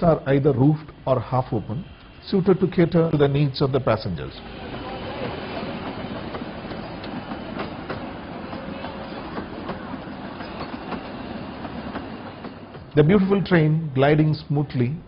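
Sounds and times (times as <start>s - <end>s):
train wheels rolling on rails: 0.0s - 13.7s.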